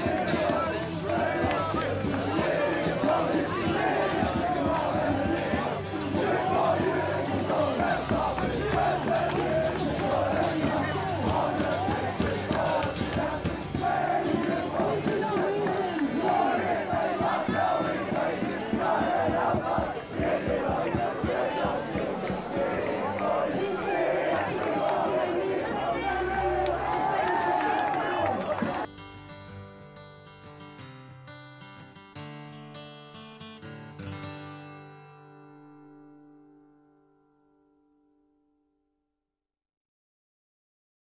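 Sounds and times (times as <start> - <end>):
crowd of boys shouting and chanting: 0.0 - 28.9
music: 0.0 - 39.0.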